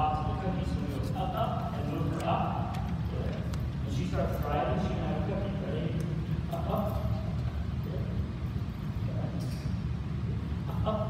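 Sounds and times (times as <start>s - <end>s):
man speaking: 0.0s - 8.4s, 10.6s - 11.0s.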